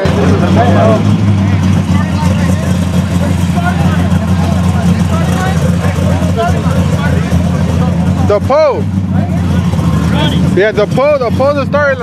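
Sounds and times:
car engine idling: 0.0 - 12.0
crowd chatter and shouts: 0.0 - 12.0.

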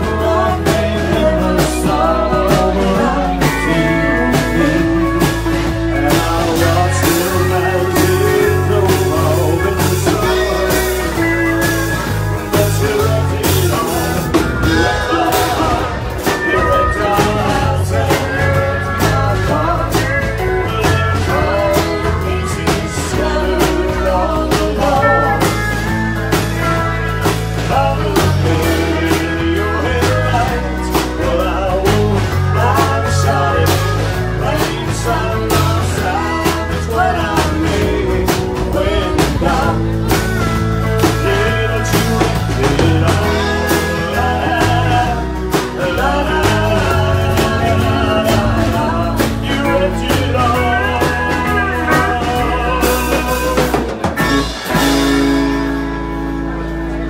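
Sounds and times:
live country band playing: 0.0 - 57.0
sliding lead guitar line: 0.0 - 57.0
final chord ringing: 25.0 - 26.3
strong drum hits: 45.6 - 51.4.

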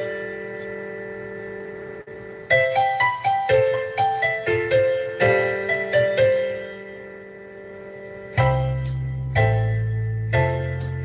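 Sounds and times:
keyboard chord ringing: 0.0 - 11.0.

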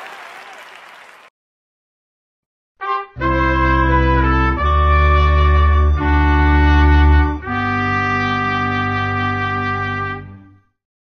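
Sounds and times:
brass fanfare chords: 2.8 - 10.6.

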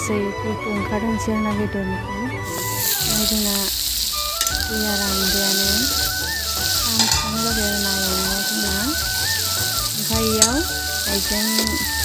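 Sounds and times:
slow melodic background music: 0.0 - 12.0
chicken sizzling in oil: 2.4 - 12.0.

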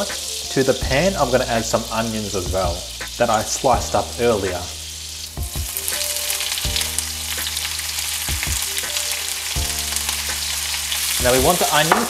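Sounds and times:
onions sizzling in a frying pan: 0.0 - 12.0.

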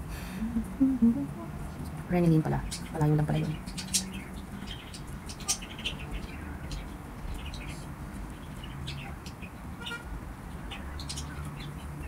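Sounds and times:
low background hum: 0.0 - 12.0
small birds chirping: 0.4 - 12.0.

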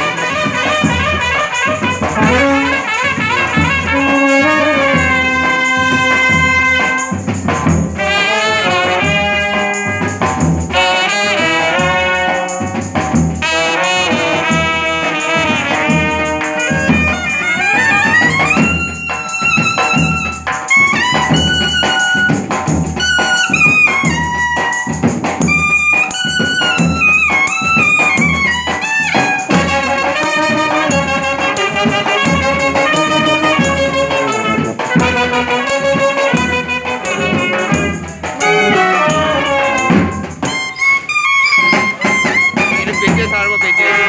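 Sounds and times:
brass band playing: 0.0 - 44.0
drum keeping time: 0.0 - 44.0.

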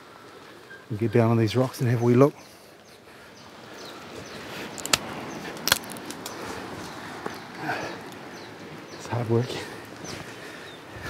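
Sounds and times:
footsteps in bush: 1.6 - 11.0
branches brushing microphone: 3.8 - 8.8.

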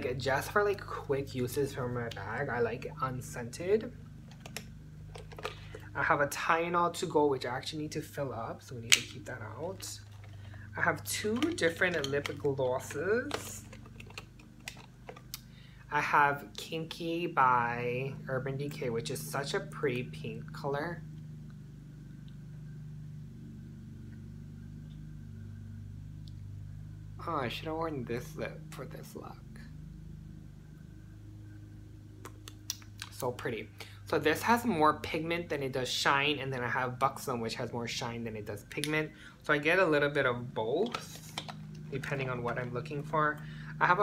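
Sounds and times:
lawn mower droning: 0.0 - 44.0.

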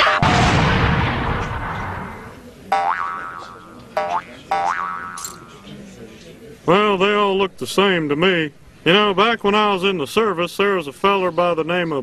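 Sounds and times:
cartoon explosion blast: 0.0 - 2.4.

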